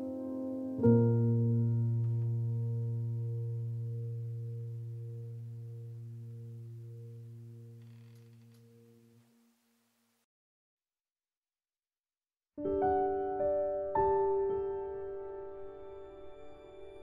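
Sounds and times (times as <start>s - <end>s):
low sustained piano chord: 0.0s - 7.8s, 12.6s - 17.0s.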